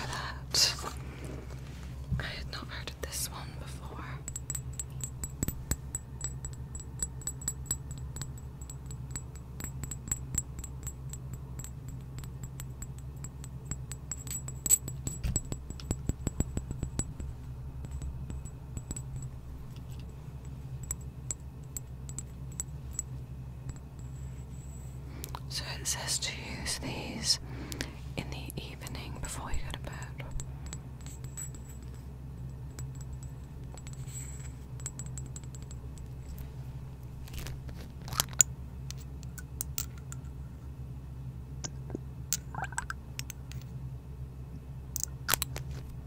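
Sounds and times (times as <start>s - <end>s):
fingernails tapping on glass bottle: 4.2s - 19.3s, 41.6s - 43.4s.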